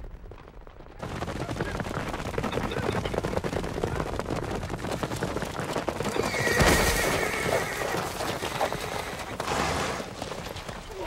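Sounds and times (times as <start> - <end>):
horses galloping on dirt: 0.0 - 11.0
horse whinnying: 6.0 - 10.3.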